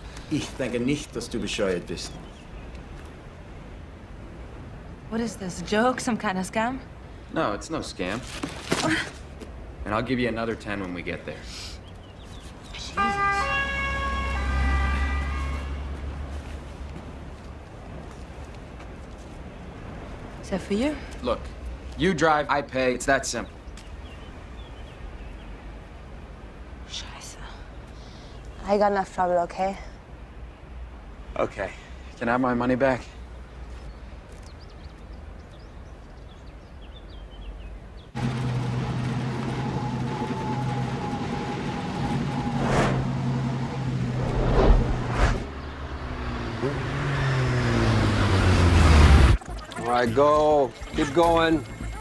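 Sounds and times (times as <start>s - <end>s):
low street rumble: 0.0s - 52.0s
two-tone emergency siren: 13.0s - 15.8s, 38.2s - 43.8s
vehicle low rumble: 33.5s - 52.0s.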